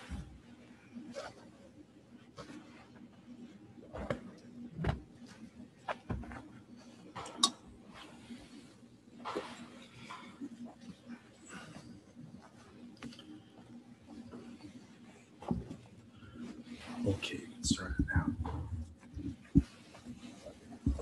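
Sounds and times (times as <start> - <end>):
knocks and rustles of handling: 0.0 - 21.0
low steady hum: 0.0 - 21.0.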